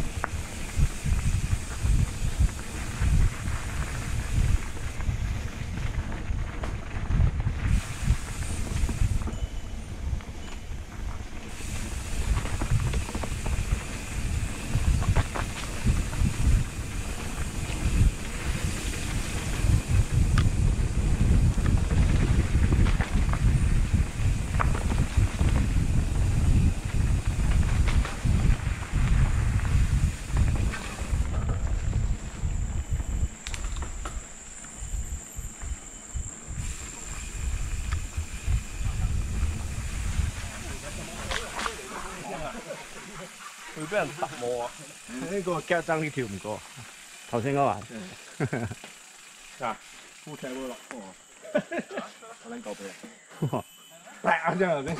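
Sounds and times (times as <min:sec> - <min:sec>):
wind rumbling on microphone: 0:00.0 - 0:42.4
bike rattling and knocking: 0:00.0 - 0:42.5.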